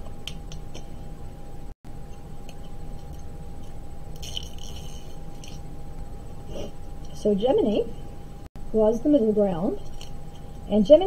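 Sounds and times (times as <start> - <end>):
faint steady hum: 0.0 - 11.0
metal pens rattling and clinking: 4.2 - 5.6.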